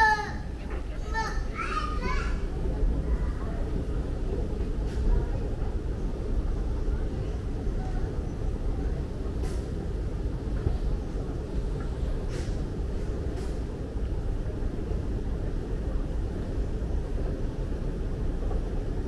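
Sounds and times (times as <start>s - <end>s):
moving walkway rumble: 0.0s - 19.0s.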